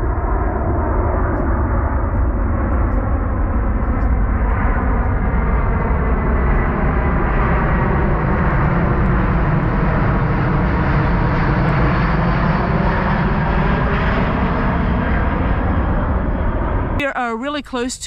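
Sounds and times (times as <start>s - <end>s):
jet plane passing overhead: 0.0s - 18.0s.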